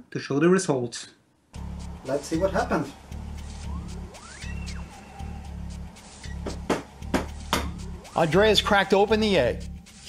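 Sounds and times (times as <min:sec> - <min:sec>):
background music: 0:01.5 - 0:10.0.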